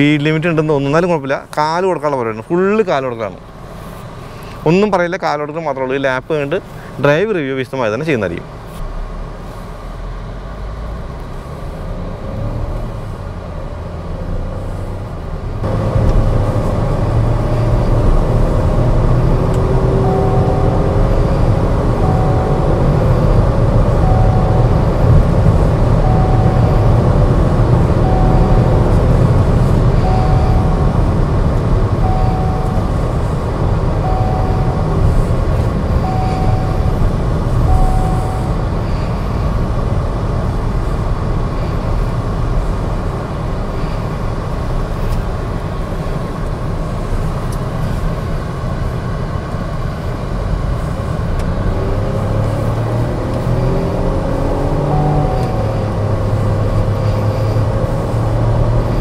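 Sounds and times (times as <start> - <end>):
car engine and road noise: 0.0 - 59.0
car chime beeping: 19.3 - 39.5, 54.3 - 57.0.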